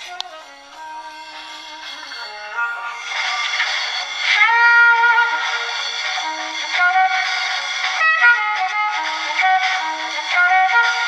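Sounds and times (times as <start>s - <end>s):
thin recorded music from horn: 0.0s - 11.0s.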